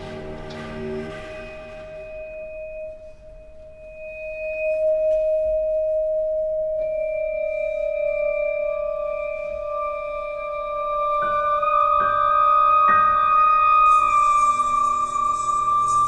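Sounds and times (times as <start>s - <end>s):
bell-like sustained tones: 0.0s - 16.0s.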